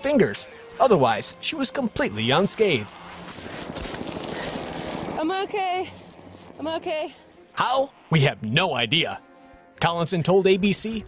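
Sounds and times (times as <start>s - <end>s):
helicopter rushing noise: 0.0s - 8.2s.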